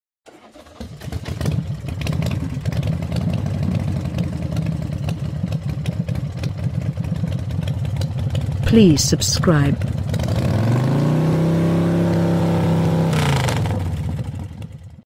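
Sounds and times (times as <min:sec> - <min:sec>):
vehicle engine starting: 0:00.3 - 0:15.0
engine running with low pulsing: 0:00.8 - 0:15.0.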